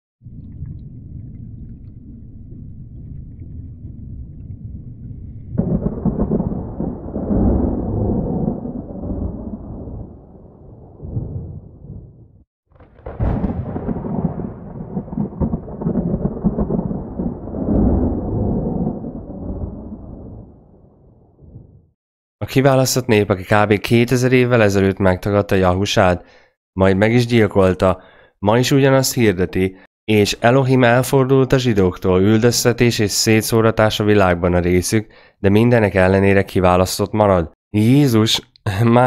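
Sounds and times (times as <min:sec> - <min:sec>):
rolling thunder rumble: 0:00.2 - 0:21.9
sharp thunder crack: 0:05.5 - 0:21.9.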